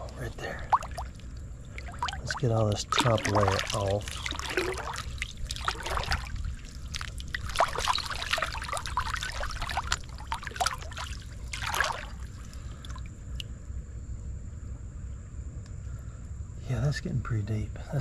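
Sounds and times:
hand splashing in creek water: 0:00.0 - 0:13.0
creek trickling: 0:00.0 - 0:13.7.

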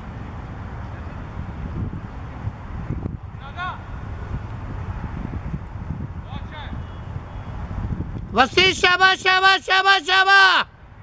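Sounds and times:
wind rumble on microphone: 0:00.0 - 0:09.4.

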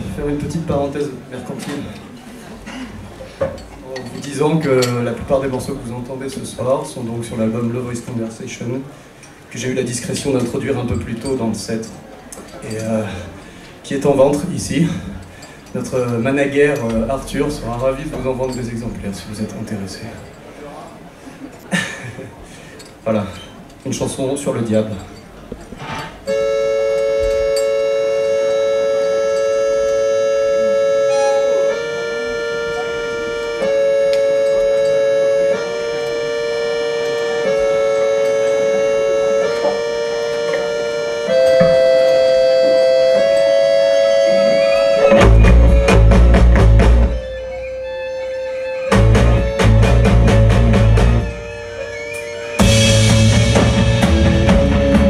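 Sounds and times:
sustained two-note chord line: 0:26.3 - 0:55.0
drums bass and guitar hits: 0:45.1 - 0:47.2, 0:49.0 - 0:51.3, 0:52.6 - 0:55.0.

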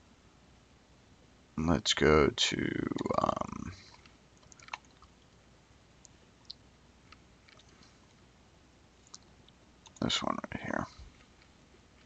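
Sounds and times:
computer keyboard clicks: 0:03.9 - 0:05.1.

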